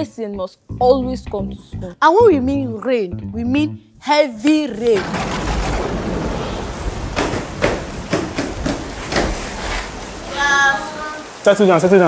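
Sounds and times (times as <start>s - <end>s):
wooden desks knocking: 4.9s - 9.6s.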